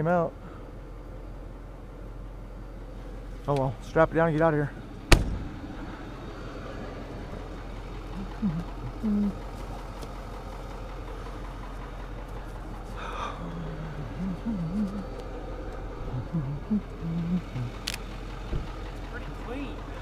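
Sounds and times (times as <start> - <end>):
tow truck engine idling: 0.0 - 20.0.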